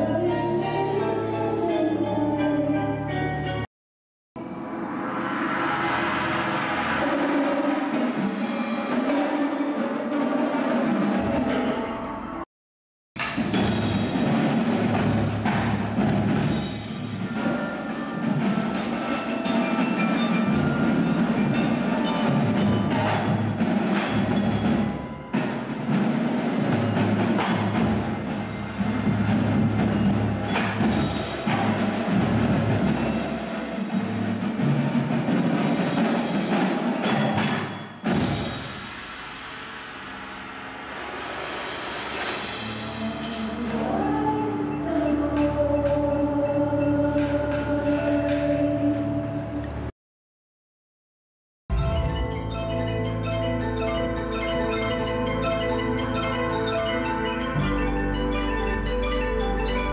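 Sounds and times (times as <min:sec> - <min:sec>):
percussion ensemble music: 0:04.4 - 0:12.4, 0:13.2 - 0:49.9, 0:51.7 - 0:59.9
drum strokes: 0:13.2 - 0:49.8
pitched mallet and bass tones: 0:51.7 - 0:59.9.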